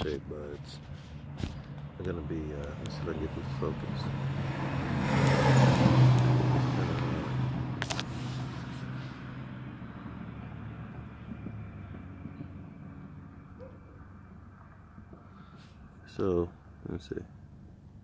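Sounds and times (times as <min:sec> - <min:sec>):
vehicle engine passing by: 0:00.0 - 0:17.7.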